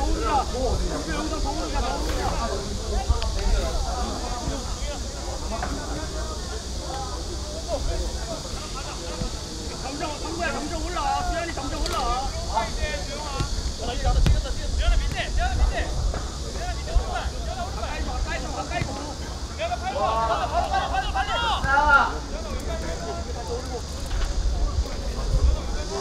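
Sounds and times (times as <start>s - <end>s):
wind rumble on microphone: 0.0s - 5.2s, 7.8s - 18.7s, 23.8s - 26.0s
players shouting and calling: 0.0s - 26.0s.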